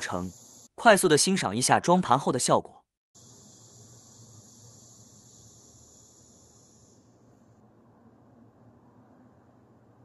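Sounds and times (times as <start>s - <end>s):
high hiss: 0.0s - 1.2s, 3.2s - 7.6s.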